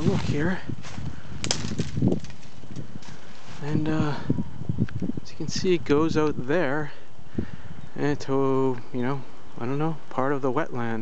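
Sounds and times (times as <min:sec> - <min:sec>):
twigs crackling and snapping: 0:00.0 - 0:03.8.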